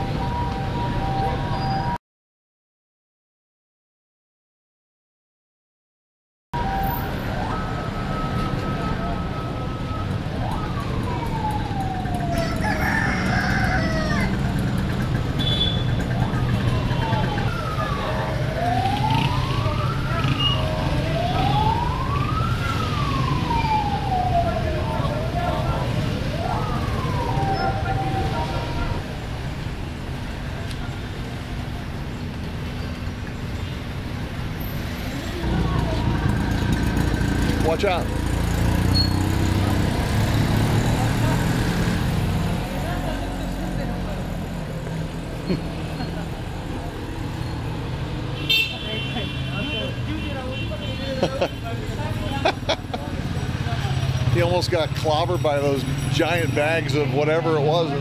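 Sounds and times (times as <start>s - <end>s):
siren-like wailing tone: 0.0s - 2.0s, 6.6s - 14.4s, 16.4s - 29.2s
street traffic rumbling: 0.0s - 2.0s, 6.6s - 58.0s.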